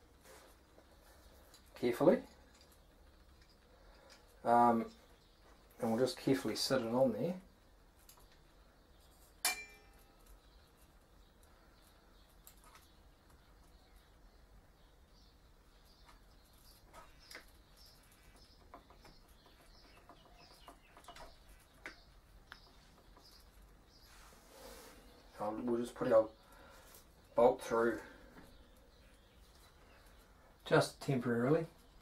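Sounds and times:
sharp metallic clink ringing: 0:09.4 - 0:10.2
faint clicks and taps: 0:16.0 - 0:23.8.

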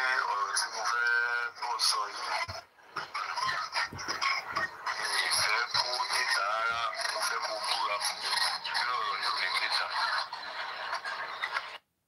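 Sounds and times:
man talking through phone speaker: 0:00.0 - 0:02.6, 0:04.5 - 0:10.2.

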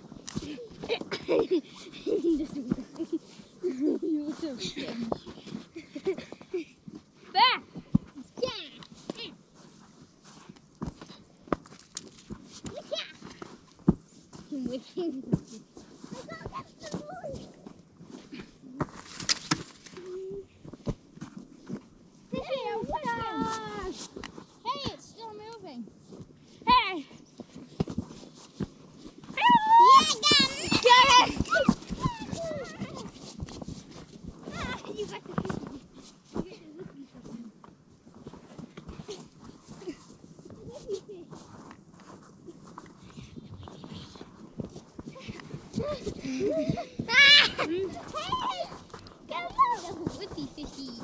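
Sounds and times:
children squealing and shouting: 0:29.3 - 0:33.1, 0:47.0 - 0:50.2.

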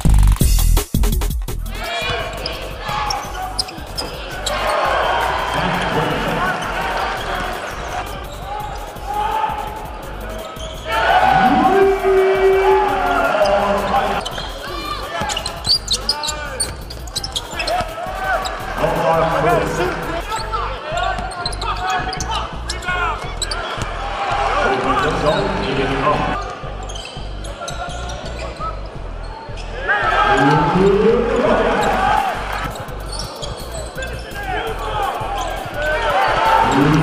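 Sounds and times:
voices: 0:01.7 - 0:23.6, 0:29.8 - 0:37.0
sneakers squeaking: 0:02.0 - 0:11.8, 0:13.0 - 0:37.0.

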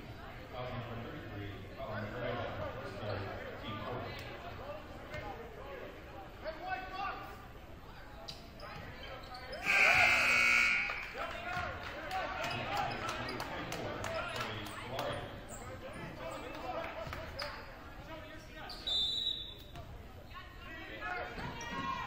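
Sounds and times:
players and spectators talking: 0:00.0 - 0:22.0
scoreboard horn buzz: 0:09.6 - 0:11.1
short high whistle blast: 0:09.7 - 0:11.0.

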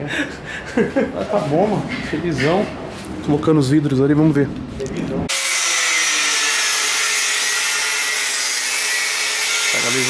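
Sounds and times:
power tool whirring: 0:05.3 - 0:10.0.

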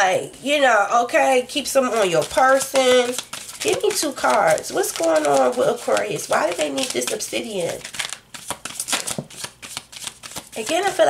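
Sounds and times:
cards being shuffled: 0:01.8 - 0:11.0.

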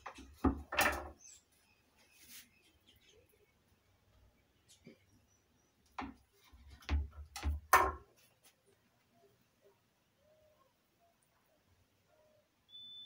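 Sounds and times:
sharp knocks and clatters: 0:06.0 - 0:08.1.

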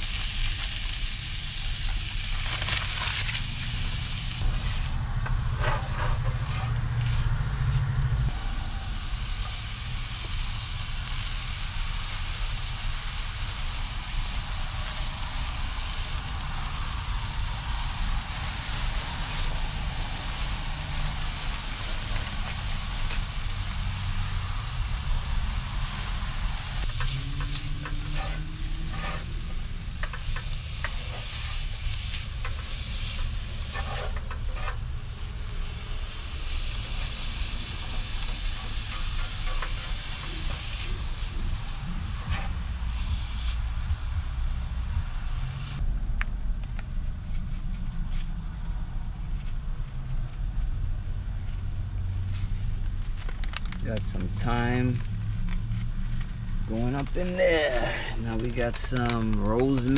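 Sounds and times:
food sizzling in a skillet: 0:00.0 - 0:07.3, 0:08.3 - 0:45.8
gas burner flame rushing: 0:00.0 - 0:45.9
utensil scraping a pan: 0:05.5 - 0:07.2, 0:25.8 - 0:35.0, 0:36.5 - 0:43.1.

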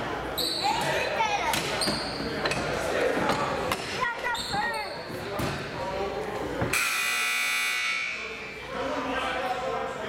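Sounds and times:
voices in a gym: 0:00.0 - 0:10.0
scoreboard buzzer: 0:06.7 - 0:08.2.

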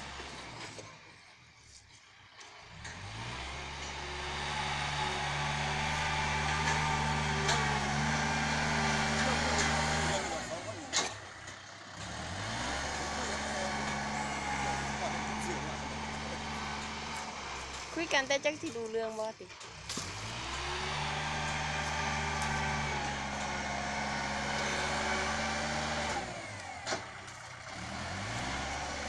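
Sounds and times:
tractor diesel engine running: 0:00.0 - 0:29.0.

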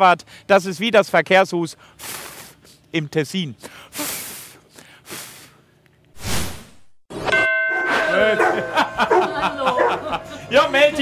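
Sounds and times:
short rush of noise: 0:06.2 - 0:07.0
bright metallic ding ringing: 0:07.2 - 0:09.6.

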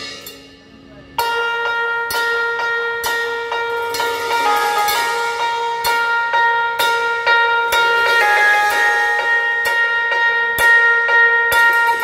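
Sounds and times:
keyboard bell-like melody: 0:01.2 - 0:12.0.

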